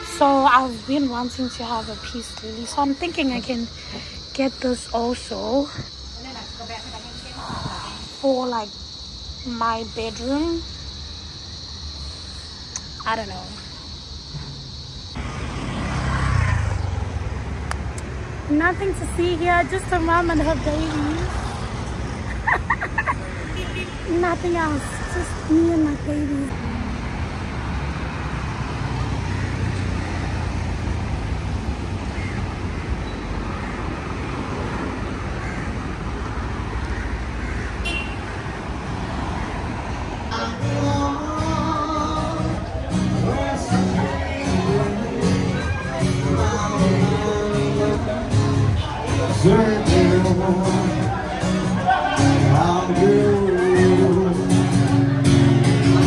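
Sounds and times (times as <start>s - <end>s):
voices: 0.0s - 17.0s, 17.7s - 26.6s, 33.0s - 56.0s
cars rumbling past: 0.0s - 56.0s
vehicle passing close by: 14.4s - 19.0s, 24.7s - 40.5s
music: 40.3s - 56.0s.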